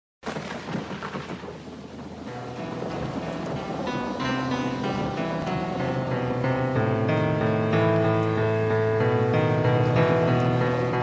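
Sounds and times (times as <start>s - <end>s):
rain: 0.2s - 11.0s
rumbling thunder: 0.3s - 8.3s.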